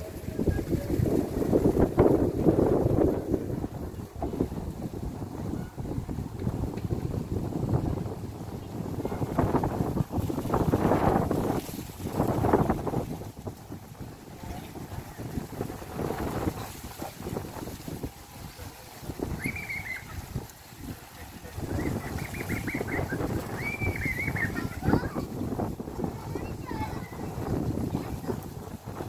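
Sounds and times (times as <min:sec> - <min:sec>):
wind buffeting microphone: 0:00.0 - 0:29.0
high wavering call: 0:19.3 - 0:20.3.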